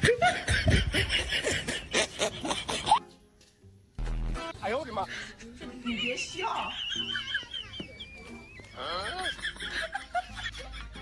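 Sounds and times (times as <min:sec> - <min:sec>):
laughter in short bursts: 0:06.7 - 0:08.2.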